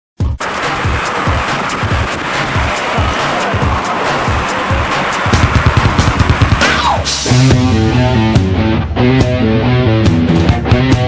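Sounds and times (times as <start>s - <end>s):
background music with drum beat: 0.2s - 11.0s.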